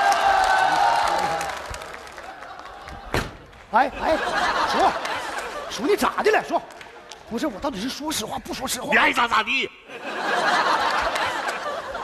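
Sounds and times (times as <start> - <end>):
audience applauding and cheering: 0.0 - 5.8.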